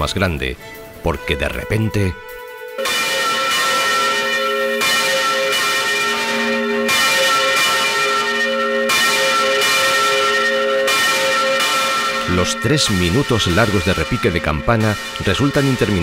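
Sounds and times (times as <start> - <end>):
large church bell ringing: 2.8 - 16.0.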